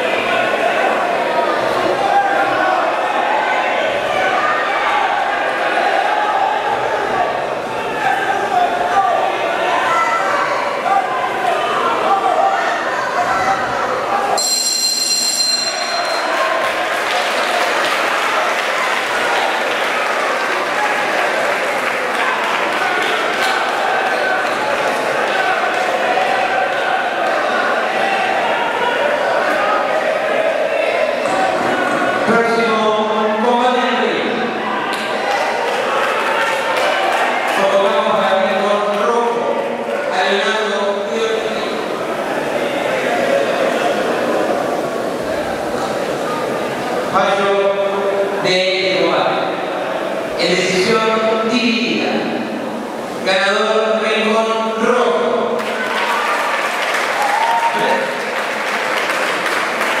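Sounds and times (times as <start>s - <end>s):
crowd shouting in echoing hall: 0.0s - 60.0s
ring bell ringing: 14.4s - 16.6s.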